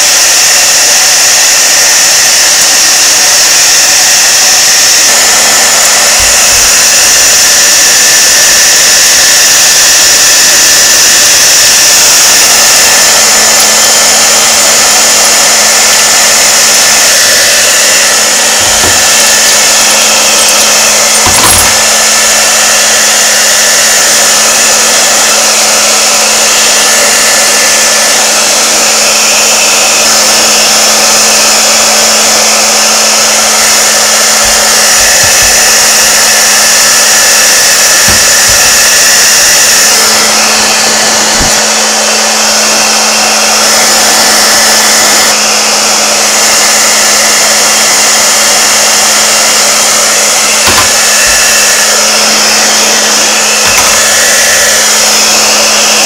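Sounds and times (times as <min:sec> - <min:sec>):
hair dryer running: 0:00.0 - 0:56.0.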